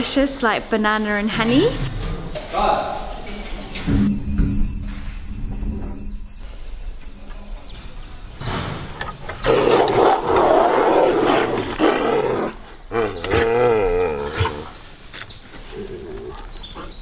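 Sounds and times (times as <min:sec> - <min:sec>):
bear moaning call: 0:09.4 - 0:14.8
bear roaring snarl: 0:09.4 - 0:14.8.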